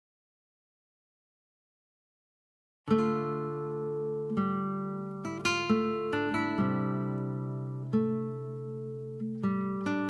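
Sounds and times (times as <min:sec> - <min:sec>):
guitar chords and plucked notes: 0:02.9 - 0:10.0.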